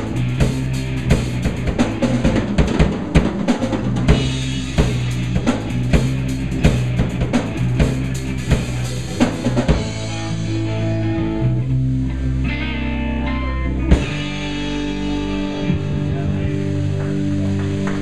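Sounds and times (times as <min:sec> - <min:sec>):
drum kit playing busily: 0:00.0 - 0:11.5, 0:13.8 - 0:18.0
bass and electric guitar notes: 0:00.0 - 0:18.0.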